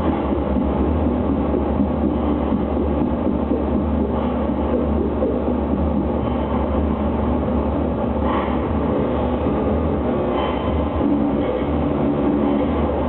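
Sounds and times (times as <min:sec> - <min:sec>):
electronic noise music: 0:00.0 - 0:13.0.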